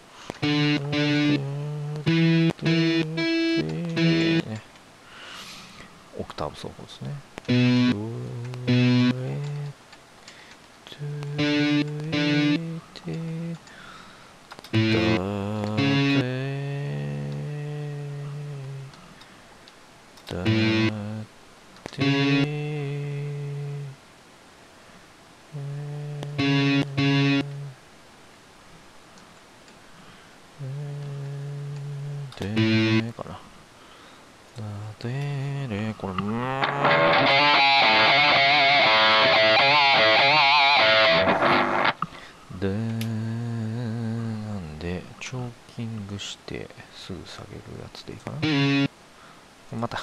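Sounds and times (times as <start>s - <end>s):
electric guitar phrase: 0.4s - 4.6s, 7.5s - 8.1s, 8.7s - 9.4s, 11.4s - 12.7s, 14.8s - 16.4s, 20.4s - 21.1s, 22.0s - 22.9s, 26.4s - 27.7s, 32.5s - 33.0s, 36.6s - 42.0s, 48.4s - 48.9s.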